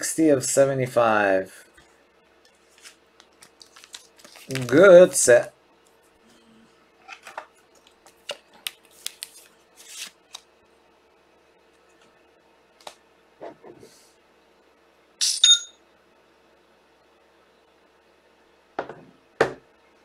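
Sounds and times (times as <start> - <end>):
faint steady hum: 0.0 - 20.0
cards being handled: 2.5 - 5.2, 7.1 - 10.5.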